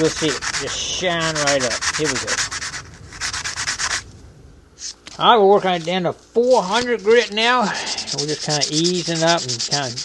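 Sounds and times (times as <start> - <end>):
metal rubbing on sandpaper: 0.0 - 4.0, 5.8 - 10.0.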